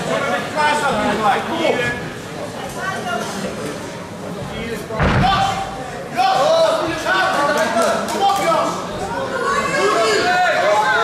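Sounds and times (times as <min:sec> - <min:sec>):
heavy thud with low boom: 0:05.0 - 0:05.6.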